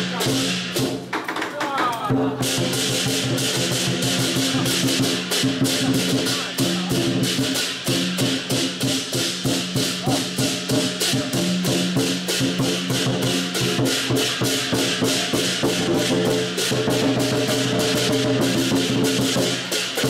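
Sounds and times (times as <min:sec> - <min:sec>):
cymbals clashing: 0:00.0 - 0:20.0
drum beating: 0:00.0 - 0:20.0.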